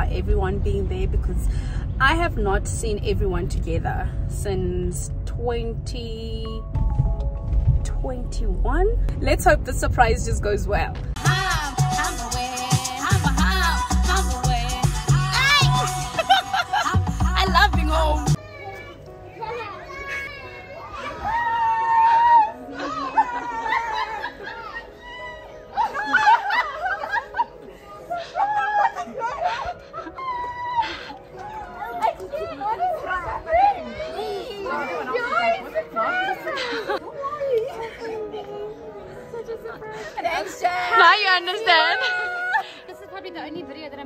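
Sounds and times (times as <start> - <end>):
people chatting: 0.0 - 6.6, 7.9 - 11.0
children playing and talking: 11.1 - 44.0
music with heavy bass beat: 11.2 - 18.4.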